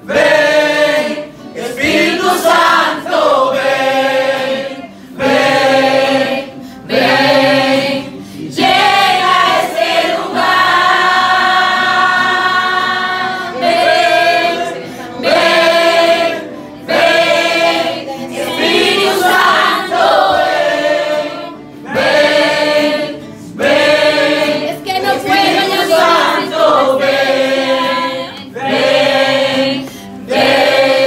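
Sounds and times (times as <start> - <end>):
congregation singing: 0.0 - 31.0.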